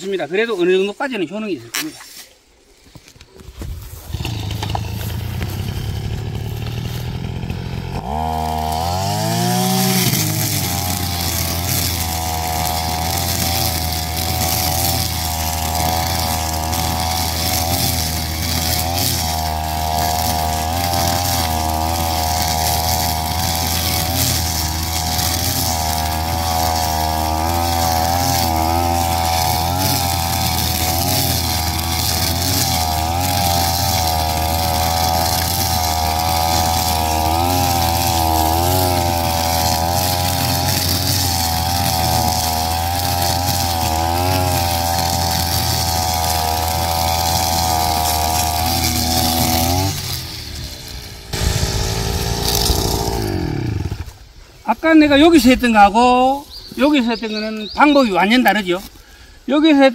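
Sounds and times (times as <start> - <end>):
brush cutter engine cutting weeds: 0.0 - 59.9.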